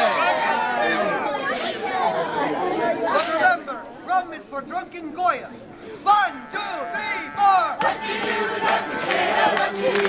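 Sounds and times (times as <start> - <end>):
crowd babble: 0.0 - 10.0.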